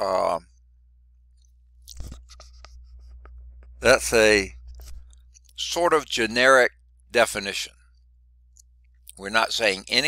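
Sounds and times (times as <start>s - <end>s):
low steady hum: 0.0s - 10.0s
faint clicks and light scratches: 1.3s - 3.9s, 4.5s - 5.6s.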